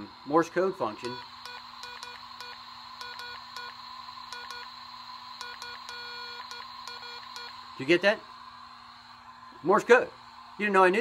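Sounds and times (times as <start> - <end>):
faint electronic hum: 0.0 - 11.0
electronic morse code beeps: 1.0 - 4.7, 5.4 - 7.6.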